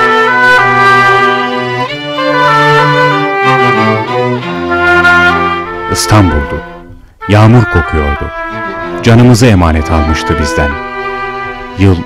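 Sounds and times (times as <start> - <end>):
slow bowed string music: 0.0 - 12.0.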